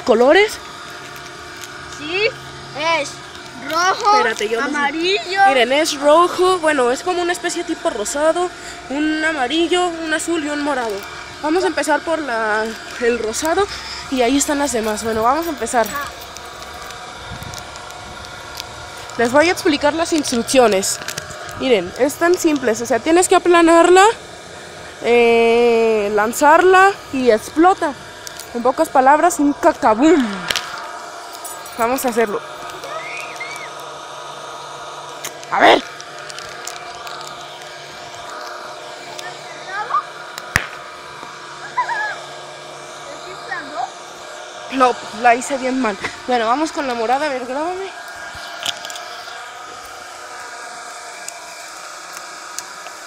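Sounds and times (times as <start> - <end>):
steady background hum: 0.0 - 53.0
toy popper crack: 40.3 - 40.9.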